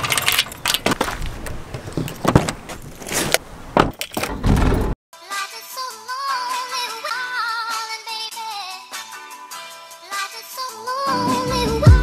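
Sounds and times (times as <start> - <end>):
keys jangling: 0.0 - 1.0
car door opening and shutting: 0.0 - 5.0.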